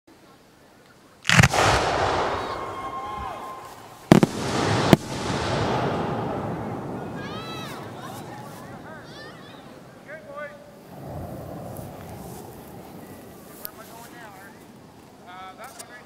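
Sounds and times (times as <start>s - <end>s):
firework shells bursting: 1.2s - 7.2s.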